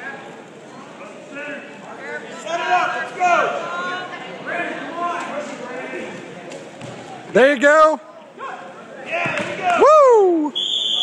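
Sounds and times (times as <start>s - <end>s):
people calling out in a gym: 0.1s - 5.4s.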